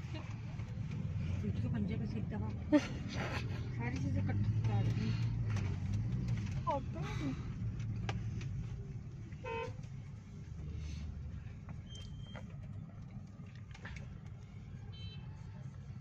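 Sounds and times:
road and engine rumble: 0.0 - 16.0
car horn toot: 14.9 - 15.2.

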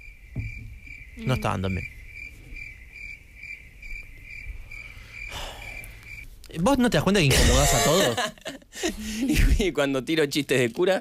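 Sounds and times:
crickets chirping: 0.0 - 9.3.

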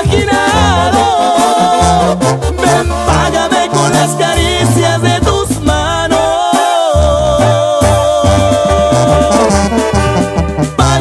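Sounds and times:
brass and wind melody: 0.0 - 11.0
tuba bass line: 0.0 - 11.0.

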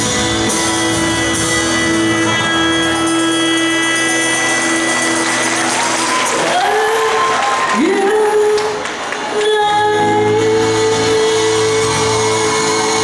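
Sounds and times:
live band closing chord: 0.0 - 6.5
audience applause: 2.8 - 9.6.

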